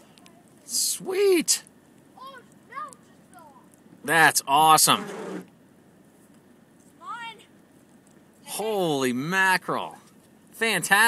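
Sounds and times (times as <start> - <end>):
faint outdoor background: 0.0 - 11.0
person exclaiming: 0.7 - 1.5.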